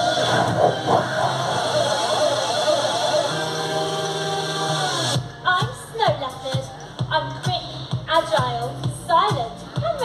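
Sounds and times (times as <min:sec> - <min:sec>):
audience crowd noise: 0:00.0 - 0:05.1
held music chord over loudspeakers: 0:00.0 - 0:10.0.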